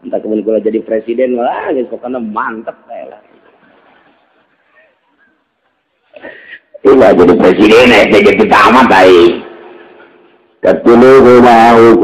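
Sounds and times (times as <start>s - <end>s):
man speaking: 0.0s - 3.5s, 6.6s - 10.0s, 10.6s - 12.0s.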